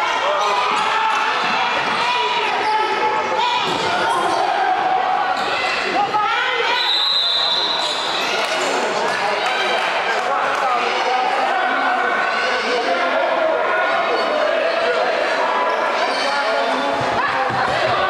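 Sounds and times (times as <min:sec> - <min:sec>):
people shouting in gym: 0:00.0 - 0:18.0.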